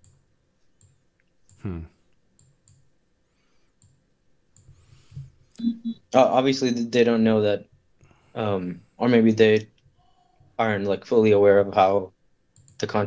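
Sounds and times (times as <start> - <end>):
man murmuring hmm: 1.6 - 2.0.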